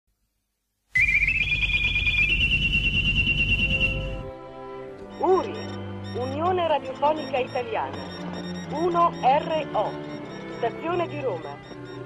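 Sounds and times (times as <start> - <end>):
high electronic whistle: 1.0 - 4.3.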